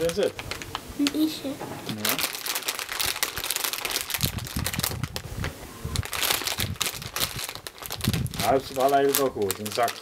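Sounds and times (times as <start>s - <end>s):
crisp packet crinkling: 0.0s - 10.0s.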